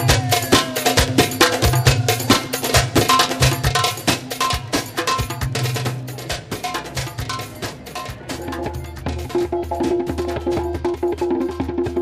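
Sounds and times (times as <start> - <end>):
hand drums fast rhythm: 0.0 - 12.0.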